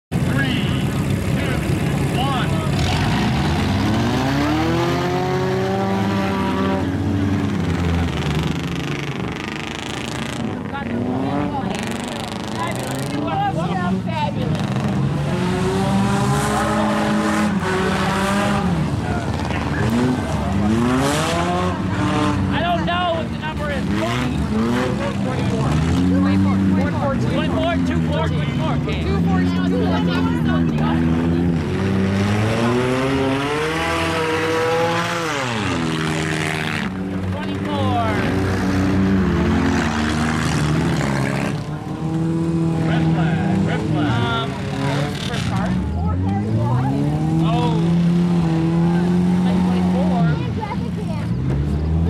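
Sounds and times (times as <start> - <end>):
race car engines revving: 0.1 - 52.0.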